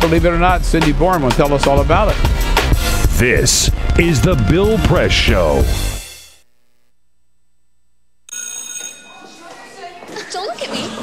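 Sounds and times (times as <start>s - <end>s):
electric school bell ringing: 8.3s - 9.8s.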